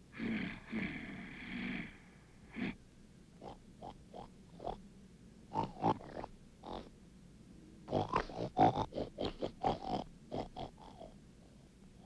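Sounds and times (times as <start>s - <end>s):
animal-like grunts: 0.1s - 2.8s, 3.4s - 4.8s, 5.5s - 6.9s, 7.9s - 11.2s.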